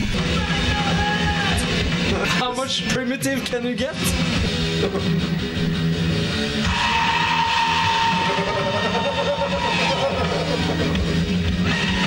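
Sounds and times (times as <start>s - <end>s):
man yelling high-pitched: 0.2s - 1.7s
electric guitar music: 4.0s - 12.0s.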